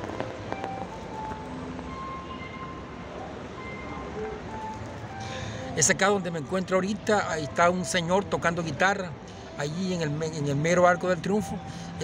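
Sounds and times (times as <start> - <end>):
city noise: 0.0 - 12.0.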